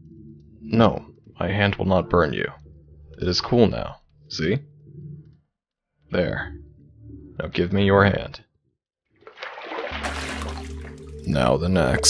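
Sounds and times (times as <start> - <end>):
bathwater splashing: 9.2 - 11.3.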